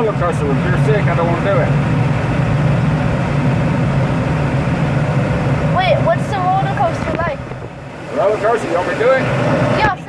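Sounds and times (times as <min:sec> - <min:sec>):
air rushing past canopy: 0:00.0 - 0:10.0.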